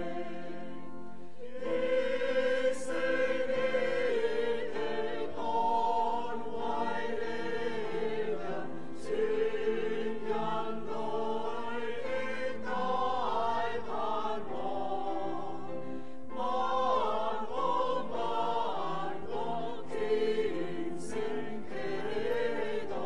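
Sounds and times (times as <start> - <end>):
group singing a slow hymn: 0.0 - 23.0.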